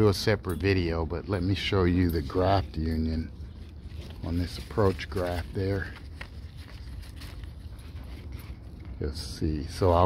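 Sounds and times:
leaves rustling: 1.5s - 10.0s.

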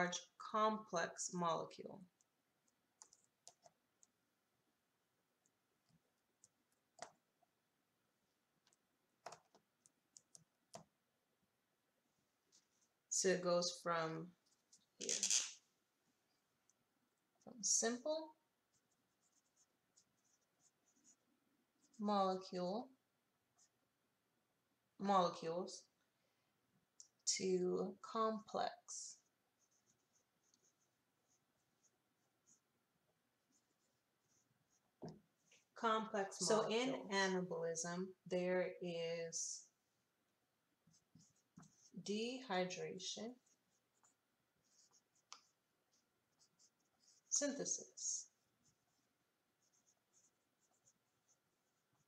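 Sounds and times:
marker scratching on paper: 18.7s - 21.2s, 29.1s - 32.7s, 33.4s - 36.9s, 40.9s - 52.0s.

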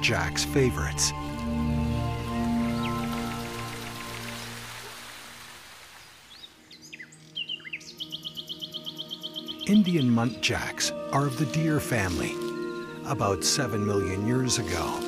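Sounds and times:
birds chirping: 0.0s - 4.8s, 5.9s - 15.0s
soft background music: 0.0s - 5.2s, 6.6s - 15.0s.

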